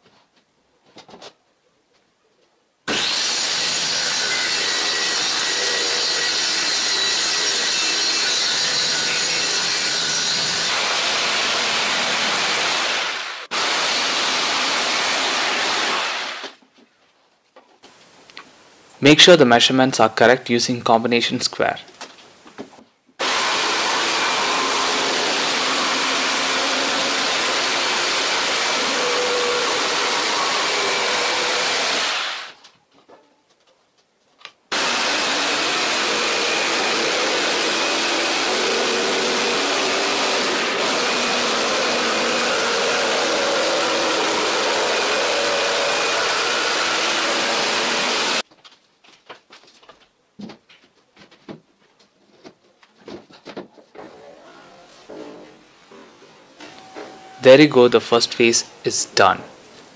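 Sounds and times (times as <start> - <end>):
electric jigsaw cutting board: 2.9 - 16.6, 23.2 - 32.6, 34.7 - 48.4.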